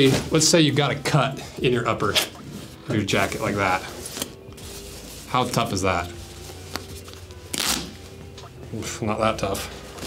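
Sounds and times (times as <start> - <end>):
fabric ripping: 6.6 - 8.0.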